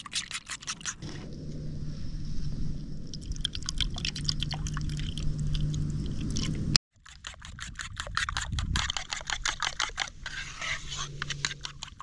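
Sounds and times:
spatula beating eggs in bowl: 0:07.0 - 0:12.0.

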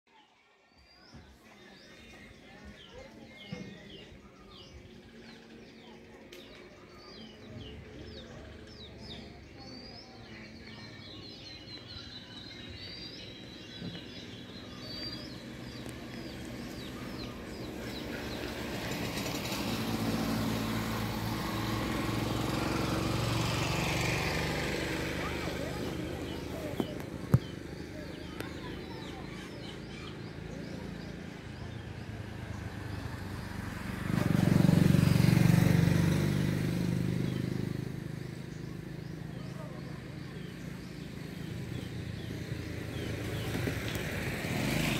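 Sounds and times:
small birds chirping: 0:00.1 - 0:44.9
vehicle engine passing by: 0:03.8 - 0:44.9.

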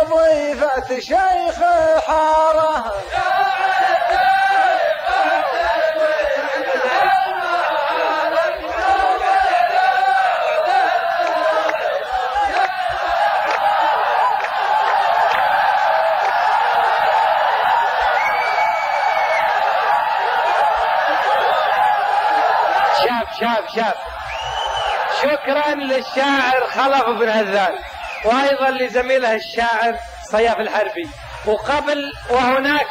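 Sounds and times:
men chanting in unison: 0:00.0 - 0:14.2.

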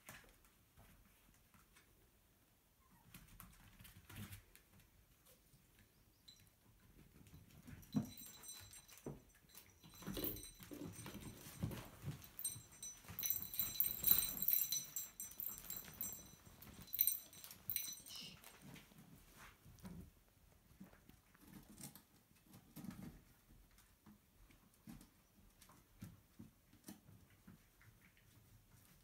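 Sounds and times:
small paws pattering on floor: 0:07.0 - 0:29.0.

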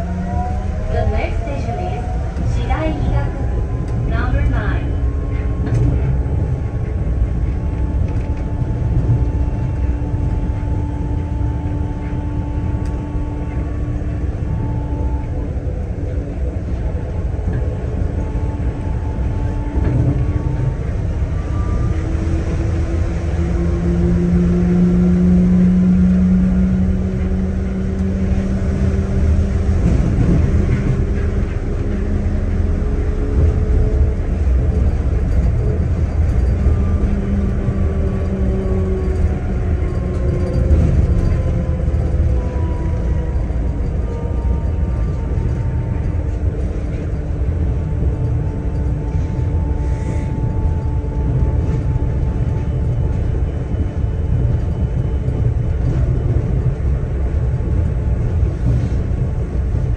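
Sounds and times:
train low rumble: 0:00.0 - 0:59.9
train motor whine: 0:00.0 - 0:59.9.

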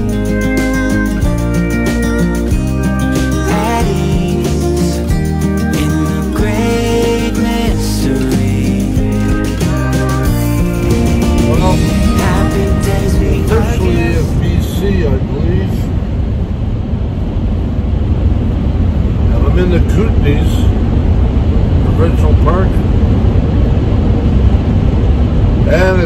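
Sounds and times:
background music: 0:00.0 - 0:15.2
engine and road noise rumble: 0:00.0 - 0:26.0
man's voice: 0:03.3 - 0:05.2, 0:05.8 - 0:16.0.

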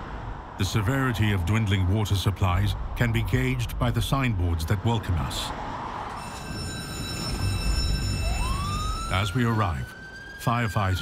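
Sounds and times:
fire truck engine rumbling: 0:02.6 - 0:11.0
fire truck siren wailing: 0:06.1 - 0:11.0.

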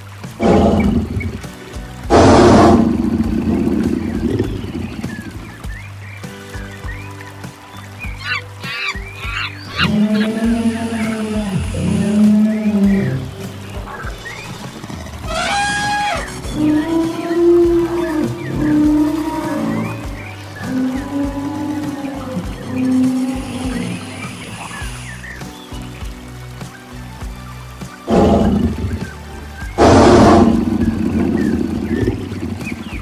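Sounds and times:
background music: 0:00.0 - 0:33.0
loud animal roars: 0:00.4 - 0:01.4, 0:02.1 - 0:03.7, 0:09.7 - 0:13.4, 0:28.1 - 0:28.8, 0:29.8 - 0:31.1
low drawn-out animal calls: 0:00.4 - 0:01.5, 0:08.2 - 0:25.1.

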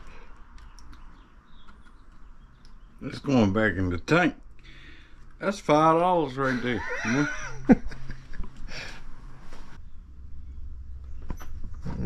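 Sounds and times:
faint bird chirps: 0:00.0 - 0:03.4.

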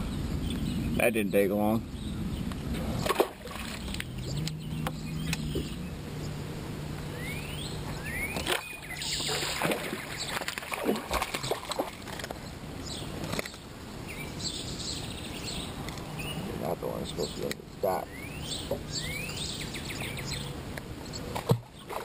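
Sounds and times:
bird calls: 0:00.0 - 0:06.4, 0:07.0 - 0:22.0
low steady hum: 0:00.0 - 0:22.0
clicks and knocks of fishing tackle: 0:12.1 - 0:12.4, 0:13.2 - 0:13.6.

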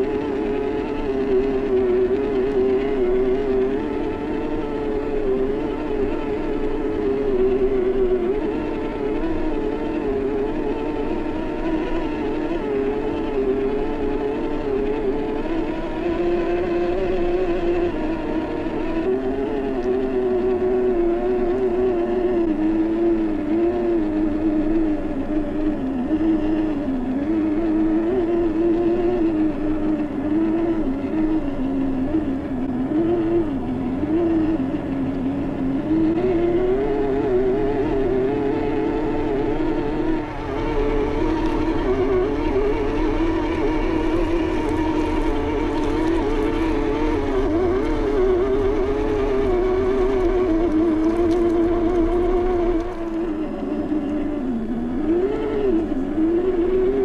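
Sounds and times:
toy car electric motor whining: 0:00.0 - 0:57.0.

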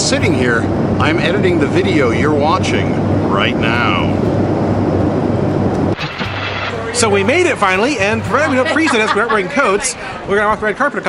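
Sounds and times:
airliner cabin engine rushing: 0:00.0 - 0:08.8
city street background noise: 0:00.0 - 0:11.0.

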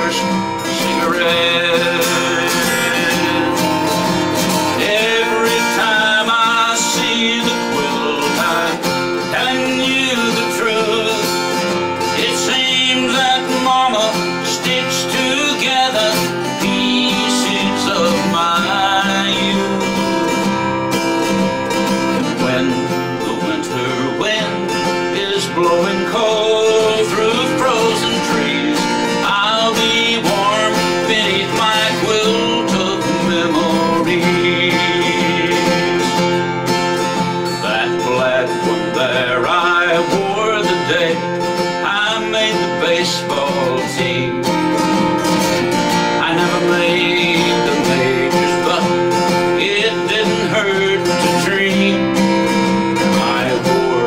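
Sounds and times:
acoustic guitar: 0:00.0 - 0:54.0
man singing country song: 0:00.0 - 0:54.0.

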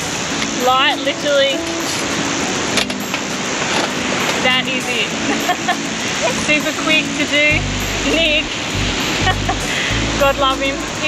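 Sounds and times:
surf: 0:00.0 - 0:11.0
wind: 0:00.0 - 0:11.0.

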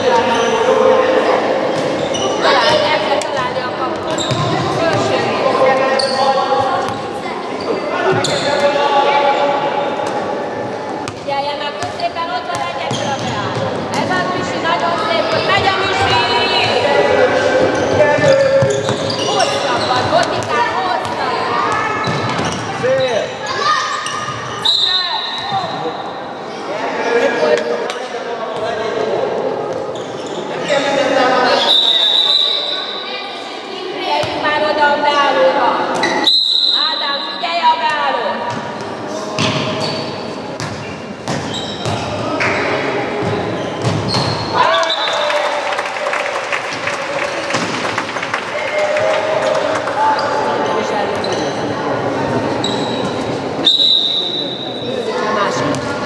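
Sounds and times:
voices echoing in a hall: 0:00.0 - 0:56.0.

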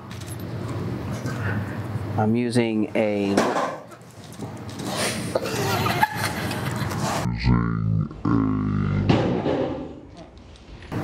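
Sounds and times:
man speaking low: 0:07.3 - 0:09.1.

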